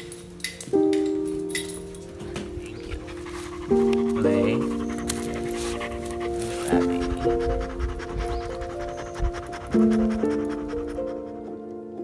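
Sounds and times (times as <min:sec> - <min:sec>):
slow sustained chords music: 0:00.0 - 0:12.0
puppy panting: 0:02.4 - 0:11.7.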